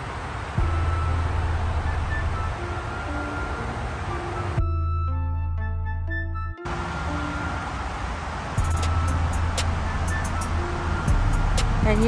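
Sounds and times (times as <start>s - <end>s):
highway traffic rush: 0.0s - 4.7s, 6.6s - 12.0s.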